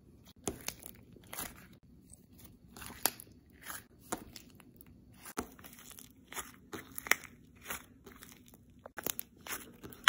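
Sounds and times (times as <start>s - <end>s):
slime squishing: 0.2s - 10.0s.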